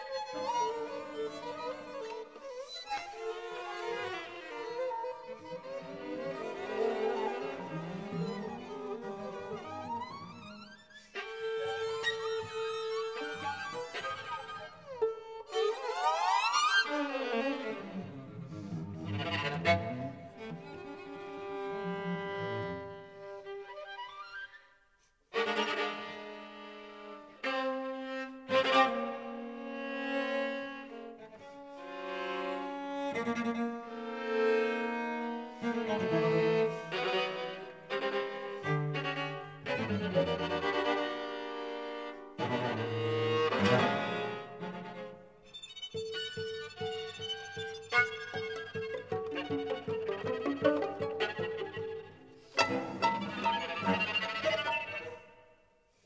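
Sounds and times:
string quartet playing: 0:00.0 - 0:23.7, 0:25.4 - 0:55.4.

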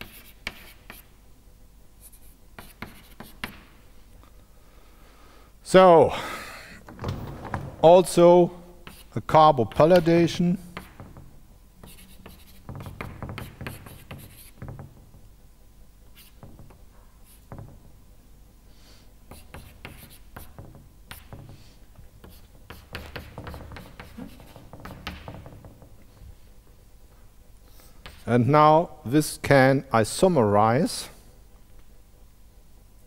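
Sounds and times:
chalk tapping and scratching on blackboard: 0:00.0 - 0:01.1, 0:02.0 - 0:03.8, 0:08.8 - 0:15.2, 0:16.1 - 0:17.9, 0:19.3 - 0:26.3, 0:27.8 - 0:28.3.

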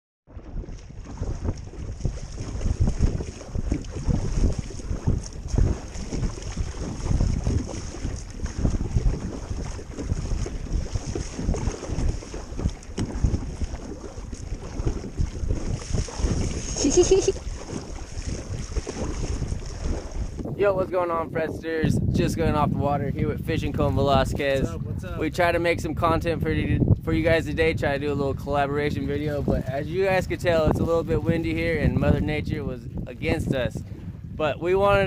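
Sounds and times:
water splashing against kayak: 0:00.3 - 0:26.0, 0:26.8 - 0:35.0
wind buffeting microphone: 0:00.3 - 0:35.0.

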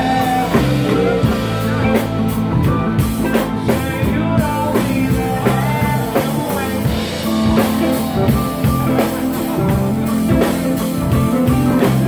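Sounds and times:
live rock band playing: 0:00.0 - 0:12.0
man singing: 0:00.0 - 0:12.0.

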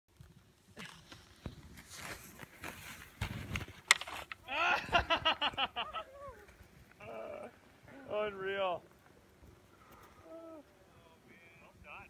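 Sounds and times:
person laughing: 0:04.5 - 0:06.4
drawn-out vocal sound: 0:09.8 - 0:11.4.

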